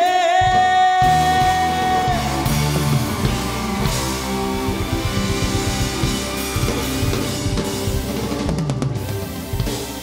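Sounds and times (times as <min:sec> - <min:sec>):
drum kit: 0:00.0 - 0:10.0
rock band playing: 0:00.0 - 0:10.0.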